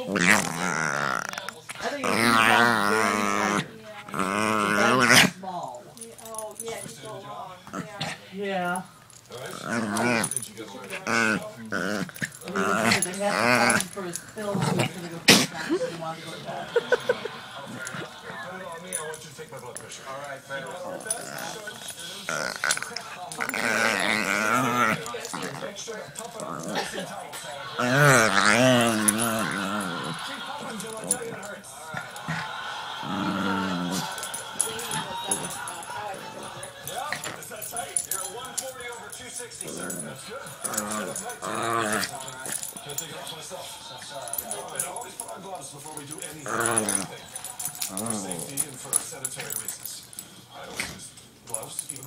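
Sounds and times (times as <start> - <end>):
dog growly vocalisation: 0.0 - 5.4, 9.3 - 18.5, 20.6 - 38.7, 39.6 - 43.1, 46.1 - 49.8.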